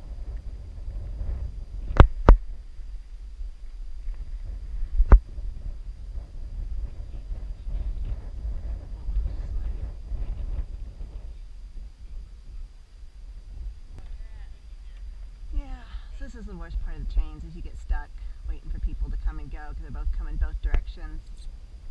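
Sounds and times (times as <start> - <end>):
wind rumbling on microphone: 0.0 - 21.9.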